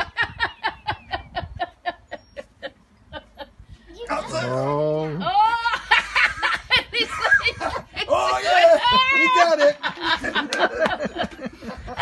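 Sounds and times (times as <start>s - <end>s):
person laughing: 5.2s - 12.0s.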